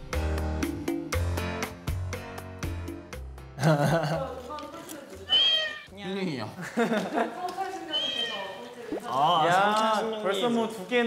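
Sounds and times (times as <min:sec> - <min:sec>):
background music: 0:00.0 - 0:07.3.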